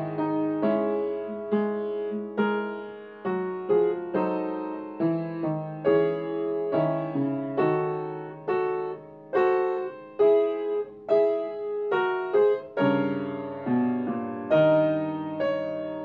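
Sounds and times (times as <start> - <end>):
piano chords ringing: 0.0 - 16.0.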